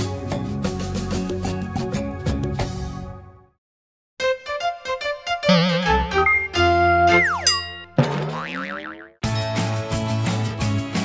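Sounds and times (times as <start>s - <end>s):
cartoon jingle: 5.4s - 9.1s
wobbling boing: 5.5s - 6.2s, 8.2s - 9.2s.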